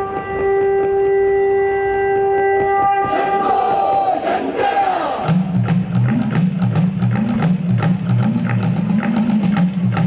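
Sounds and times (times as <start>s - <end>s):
wind instrument holding a note: 0.0s - 5.4s.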